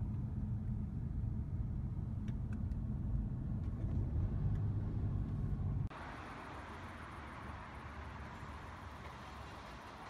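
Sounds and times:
car driving rumble from inside: 0.0 - 5.9.

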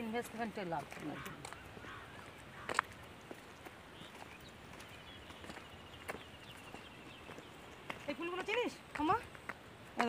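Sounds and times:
footsteps on dirt and stone path: 0.0 - 10.0
faint high bird chirps: 3.9 - 7.8.

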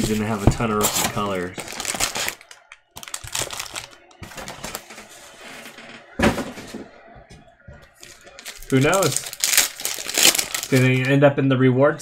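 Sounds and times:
foil card packs rustling: 0.0 - 5.9, 7.9 - 11.2.

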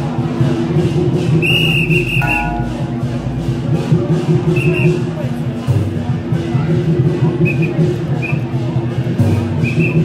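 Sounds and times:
high whistle blown: 1.5 - 2.9
background music: 2.0 - 3.9.

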